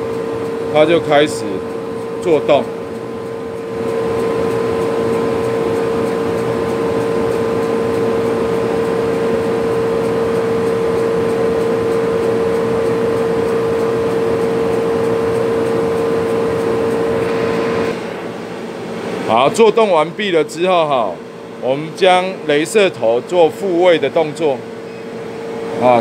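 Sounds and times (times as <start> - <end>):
blowers whirring hum: 0.0 - 26.0
laser engraver head whine: 0.0 - 26.0.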